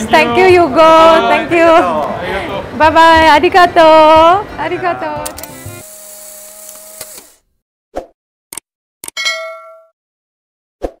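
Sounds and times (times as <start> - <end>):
bright bell-like ding: 9.2 - 10.0.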